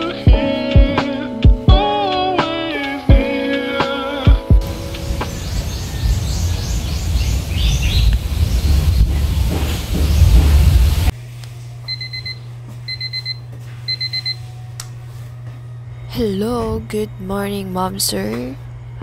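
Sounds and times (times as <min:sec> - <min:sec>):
loud dense chirping noise: 0:04.6 - 0:11.1
low steady hum: 0:04.6 - 0:19.0
alarm clock beeping: 0:11.9 - 0:14.4.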